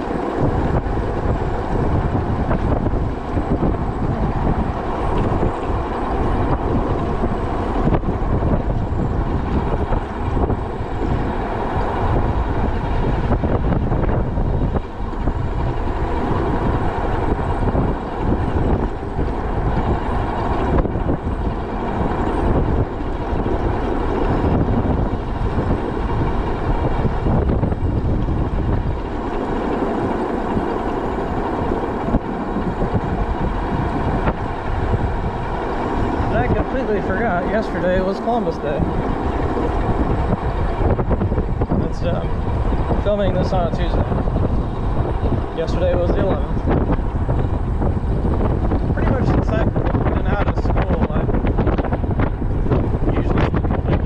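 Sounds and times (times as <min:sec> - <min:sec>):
tyre and road rumble: 0:00.0 - 0:54.0
wind buffeting microphone: 0:00.0 - 0:54.0.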